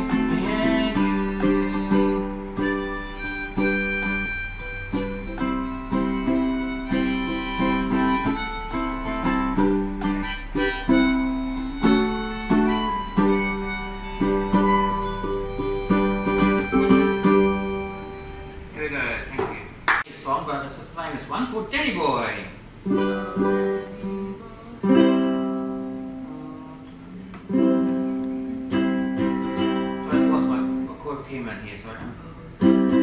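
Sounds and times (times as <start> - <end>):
strummed ukulele: 0.0 - 18.8, 22.8 - 31.1, 32.5 - 33.0
harmonica playing: 0.0 - 19.3, 22.9 - 26.8, 27.5 - 30.9.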